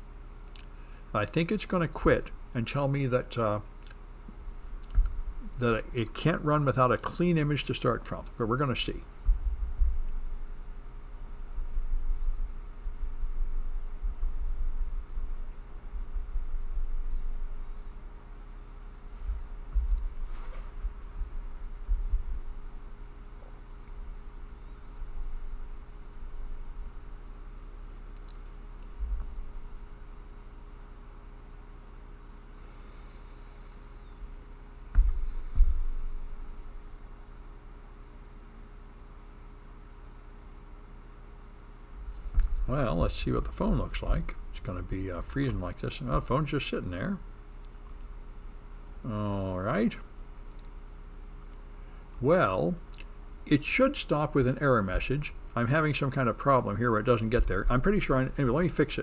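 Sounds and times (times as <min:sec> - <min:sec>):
faint electrical hum: 0:00.0 - 0:59.0
dull low thumps: 0:09.1 - 0:17.8, 0:19.2 - 0:23.0, 0:28.9 - 0:30.0, 0:34.9 - 0:36.9, 0:42.0 - 0:46.2
faint wavering high whistle: 0:32.5 - 0:34.2
low uneven rumble: 0:34.9 - 0:37.0, 0:42.0 - 0:47.3.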